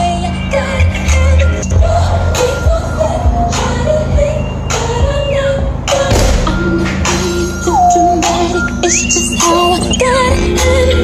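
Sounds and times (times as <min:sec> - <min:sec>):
electronic music with heavy bass: 0:05.0 - 0:11.0.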